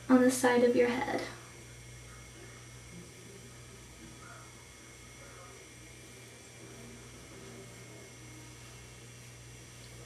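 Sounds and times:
constant hiss: 0.0s - 10.0s
low electrical hum: 0.0s - 10.0s.

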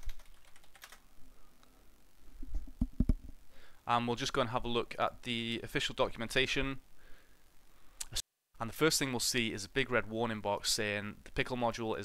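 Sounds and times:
computer keyboard typing: 0.0s - 1.0s.

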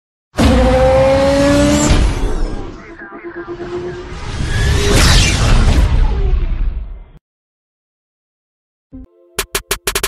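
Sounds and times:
race car engine revving: 0.4s - 2.7s.

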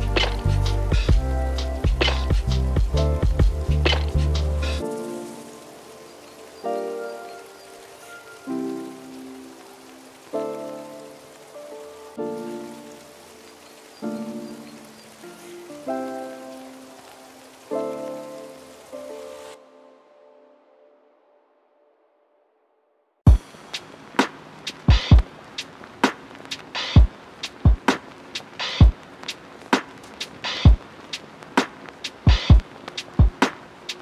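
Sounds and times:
lofi hip hop drums: 0.0s - 4.9s, 23.3s - 34.0s
rain-like hiss: 0.0s - 20.0s, 23.3s - 34.0s
soft keyboard chords: 0.0s - 21.5s.

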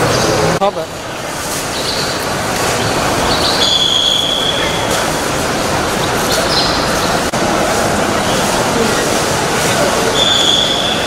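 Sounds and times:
train rumble and hiss: 0.0s - 11.0s
high steady squeal: 2.8s - 5.0s.

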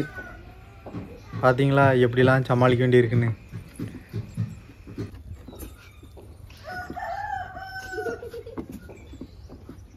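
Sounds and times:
rooster crowing: 6.5s - 8.4s.

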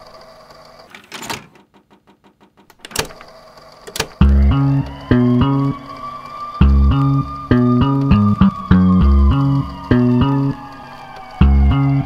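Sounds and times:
mechanical clicks and clacks: 0.8s - 5.0s.

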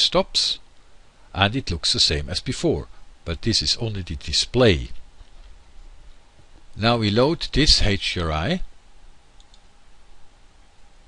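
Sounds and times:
room tone hiss: 0.0s - 11.0s
computer mouse clicks: 9.4s - 9.7s.

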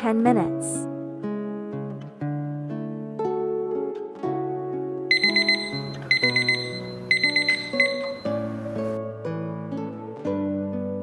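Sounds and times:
background music with plucked strings: 0.3s - 11.0s
timer alarm high-pitched beeps: 5.1s - 8.6s.

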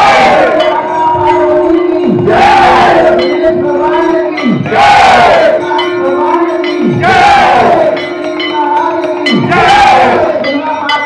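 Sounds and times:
crowd chanting in unison: 0.0s - 11.0s
singers on microphones: 0.0s - 11.0s
steady held tone: 0.0s - 11.0s.

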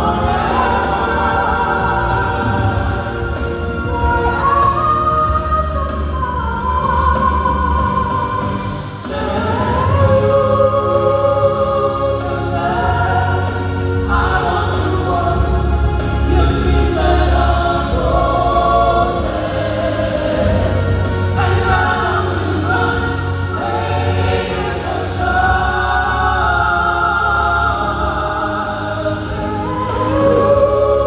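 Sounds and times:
vocal group singing gospel: 0.0s - 31.0s.

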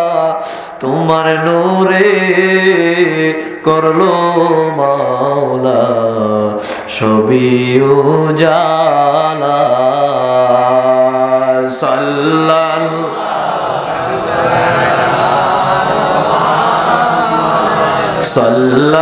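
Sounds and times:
man chanting devotional song: 0.0s - 13.3s, 14.0s - 19.0s.

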